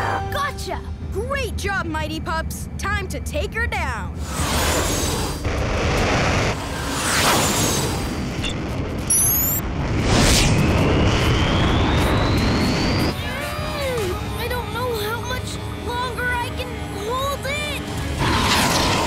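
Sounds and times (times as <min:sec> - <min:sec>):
background music: 0:00.0 - 0:04.2, 0:12.1 - 0:19.0
whooshes: 0:04.2 - 0:13.1
rising whine: 0:04.2 - 0:13.2
dense rumble: 0:07.9 - 0:13.1
quick beeps: 0:08.4 - 0:09.6.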